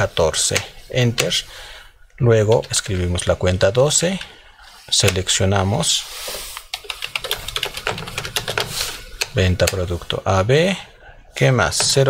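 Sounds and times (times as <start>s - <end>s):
computer keyboard typing: 6.6s - 9.8s.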